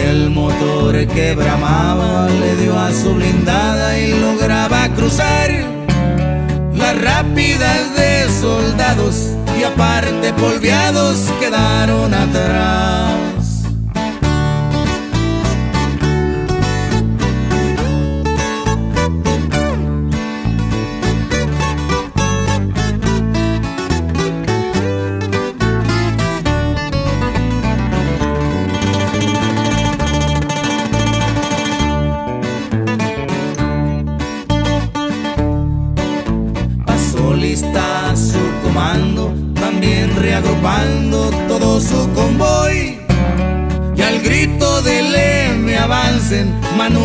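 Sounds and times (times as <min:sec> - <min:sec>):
acoustic guitars picking melody: 0:00.0 - 0:47.0
bass line: 0:00.0 - 0:47.0.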